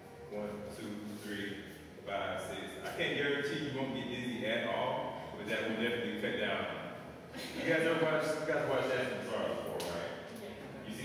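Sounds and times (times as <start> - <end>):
man talking: 0.1 - 7.0, 7.6 - 10.2, 10.8 - 11.0.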